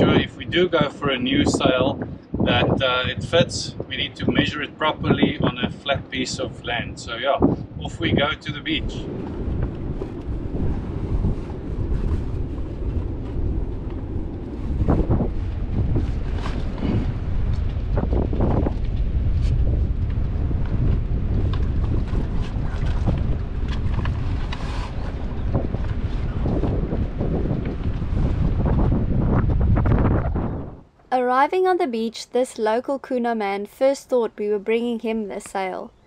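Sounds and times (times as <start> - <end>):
wind buffeting microphone: 0.0 - 31.0
sail knocks and rustles: 9.1 - 30.3.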